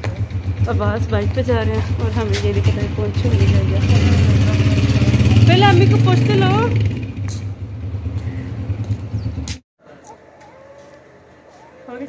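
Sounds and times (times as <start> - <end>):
motorcycle engine idling: 0.0 - 9.5.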